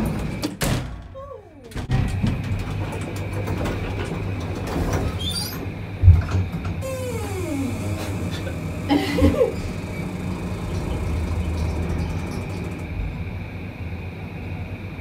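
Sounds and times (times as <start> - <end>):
lift doors sliding shut: 1.7 - 13.4
lift low hum: 6.8 - 15.0.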